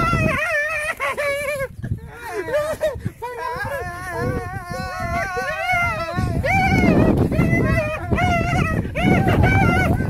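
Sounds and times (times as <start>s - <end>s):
high-pitched whimpering cries: 0.0s - 10.0s.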